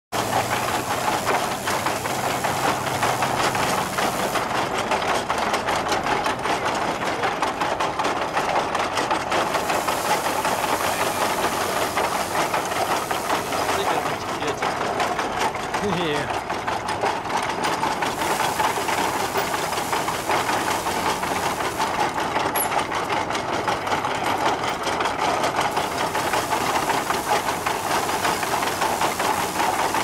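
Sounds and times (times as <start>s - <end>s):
grain thresher clattering and whirring: 0.1s - 30.0s.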